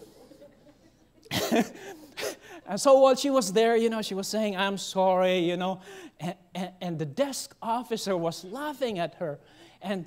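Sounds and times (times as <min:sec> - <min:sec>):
man coughing: 0:01.3 - 0:02.6.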